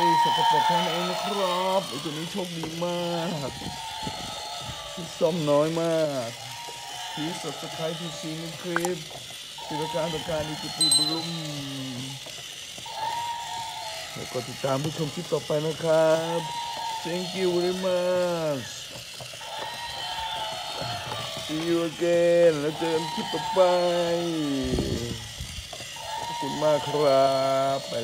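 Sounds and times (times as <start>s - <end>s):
toy electric motor buzzing: 0.0s - 28.0s
whistle-like high tone: 9.6s - 12.2s, 19.4s - 25.2s, 26.0s - 28.0s.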